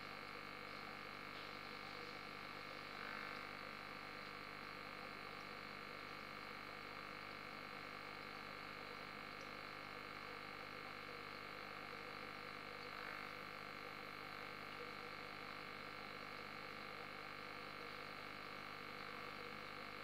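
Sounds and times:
aquarium filter bubbling and hum: 0.0s - 20.0s.

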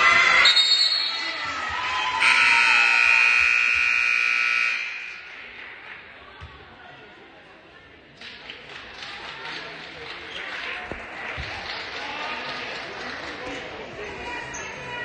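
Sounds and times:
crowd voices: 0.0s - 15.0s
scoreboard horn blaring: 2.2s - 5.3s.

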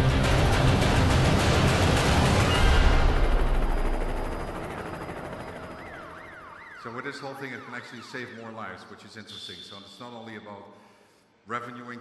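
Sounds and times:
loud dense music mix: 0.0s - 4.2s
emergency vehicle siren: 2.2s - 9.1s.

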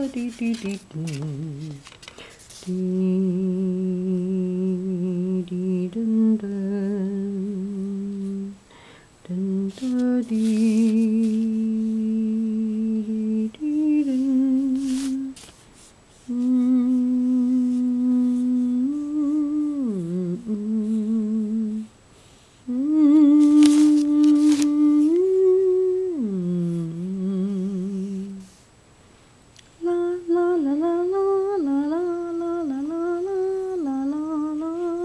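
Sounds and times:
person humming a slow tune: 0.0s - 1.9s, 2.6s - 8.6s, 9.2s - 15.4s, 16.2s - 21.9s, 22.7s - 28.6s, 29.8s - 35.0s.

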